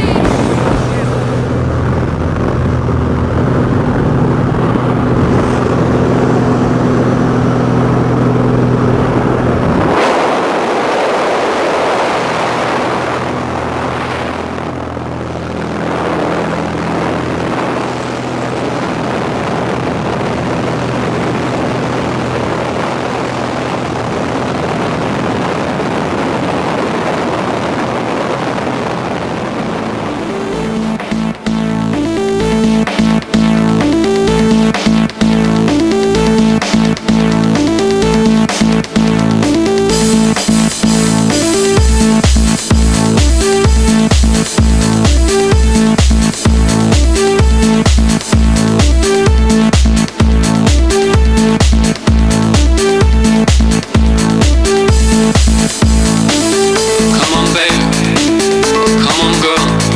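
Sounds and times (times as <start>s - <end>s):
small plane engine droning: 0.0s - 59.9s
wind rushing: 0.0s - 59.9s.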